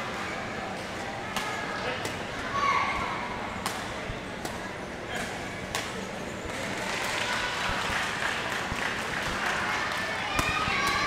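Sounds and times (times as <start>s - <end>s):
rackets hitting shuttlecock: 10.3s - 11.0s.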